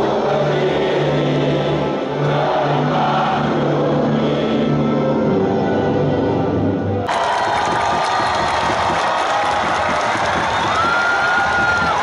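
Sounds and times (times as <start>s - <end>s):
crowd cheering and shouting: 7.0s - 12.0s.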